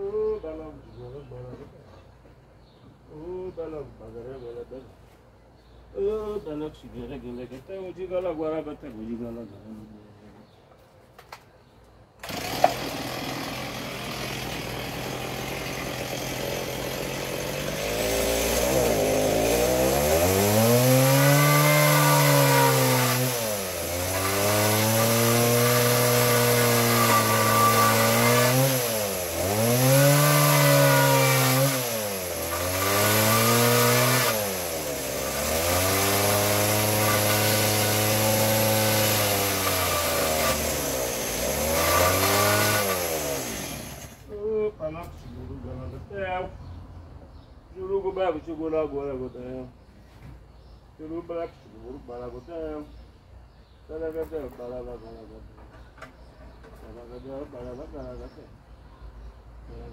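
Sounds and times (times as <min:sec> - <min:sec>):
motor running loudly: 0:12.3 - 0:44.2.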